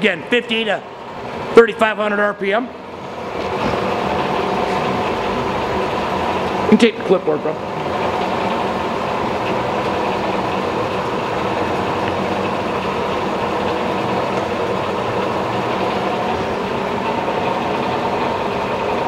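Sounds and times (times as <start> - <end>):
milling machine motor whirring: 0.8 - 19.0.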